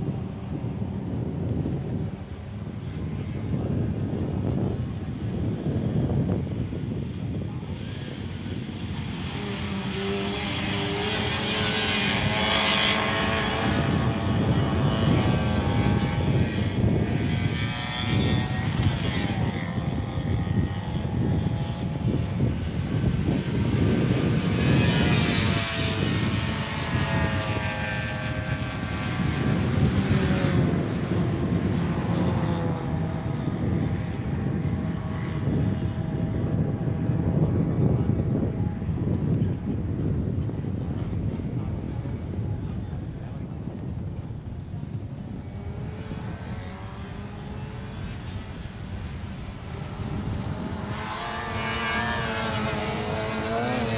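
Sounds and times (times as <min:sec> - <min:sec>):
race car engines accelerating: 0:00.0 - 0:53.9.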